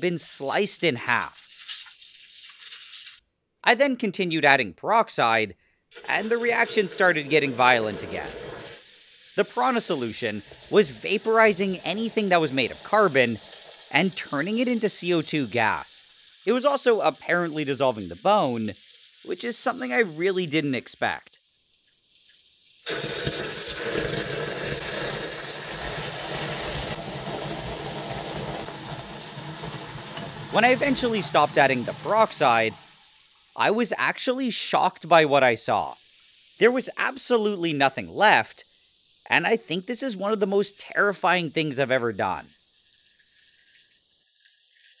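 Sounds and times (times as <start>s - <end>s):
liquid bubbling and fizzing: 5.9s - 33.6s, 35.1s - 39.8s, 42.2s - 45.0s.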